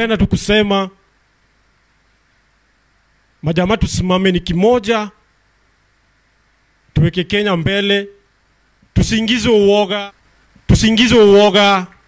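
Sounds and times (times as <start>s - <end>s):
man speaking into microphone: 0.0s - 1.0s, 3.4s - 5.2s, 6.9s - 8.2s, 8.9s - 12.0s
faint hum: 0.0s - 12.0s.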